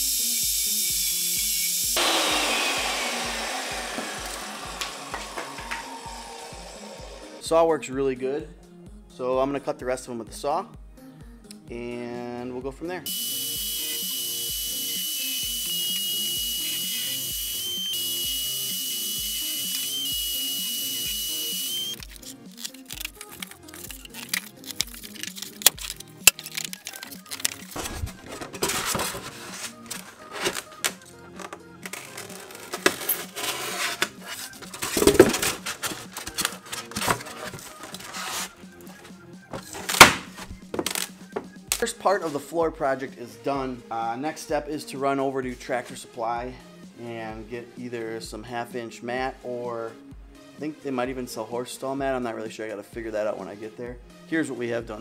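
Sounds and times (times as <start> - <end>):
table saw cutting foam board: 0.2 - 7.4, 13.1 - 22.0, 32.2 - 36.0
music with steady beat: 2.8 - 7.6, 34.0 - 42.0
foam boards knocking and rubbing: 33.6 - 36.0.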